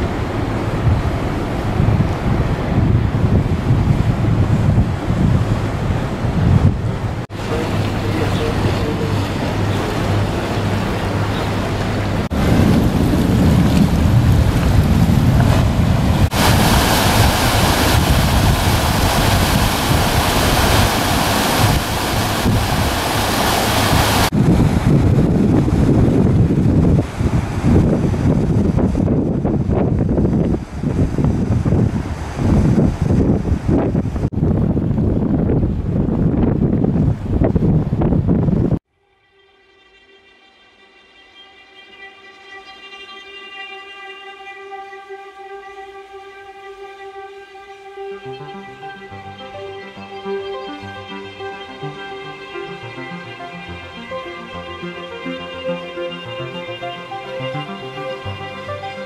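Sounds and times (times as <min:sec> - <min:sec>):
rushing water: 0:00.0 - 0:34.4, 0:44.4 - 0:59.0
wind buffeting microphone: 0:00.0 - 0:38.8.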